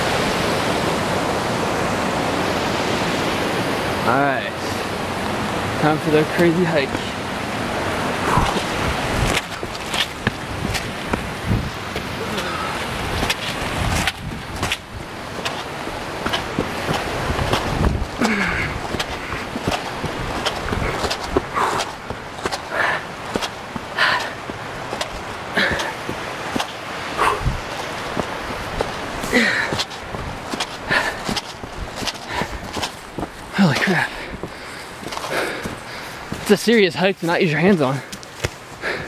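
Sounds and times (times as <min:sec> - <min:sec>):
running footsteps on rocky trail: 0:06.0 - 0:39.0
panting breaths: 0:20.4 - 0:23.1, 0:23.8 - 0:24.4, 0:25.6 - 0:26.1, 0:27.2 - 0:27.6, 0:29.2 - 0:30.0, 0:30.6 - 0:32.9, 0:33.8 - 0:36.4, 0:38.0 - 0:39.0.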